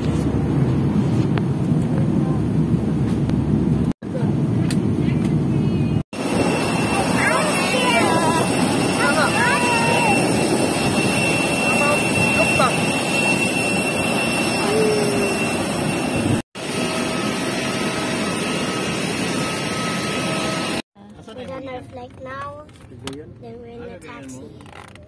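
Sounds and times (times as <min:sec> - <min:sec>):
jet engine whine: 0:00.0 - 0:20.8
people talking: 0:06.9 - 0:10.4, 0:11.6 - 0:12.8, 0:14.6 - 0:15.3.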